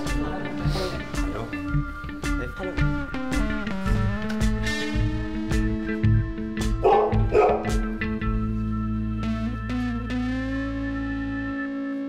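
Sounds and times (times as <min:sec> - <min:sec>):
background music with bass line: 0:00.0 - 0:12.0.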